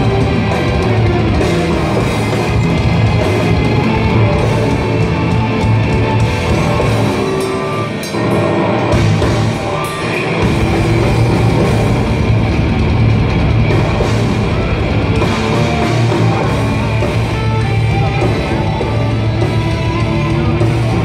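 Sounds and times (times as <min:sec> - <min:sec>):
deep bass: 0:00.0 - 0:07.4, 0:08.8 - 0:09.8, 0:10.4 - 0:21.0
metal band playing live: 0:00.0 - 0:21.0.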